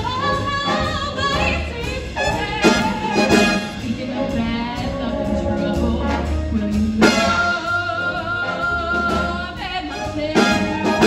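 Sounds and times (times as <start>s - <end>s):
bass: 0.0s - 11.0s
jazz big band playing: 0.0s - 11.0s.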